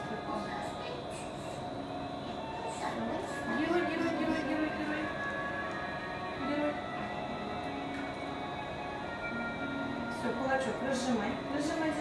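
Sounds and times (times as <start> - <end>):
music with long held notes: 1.6 - 12.0.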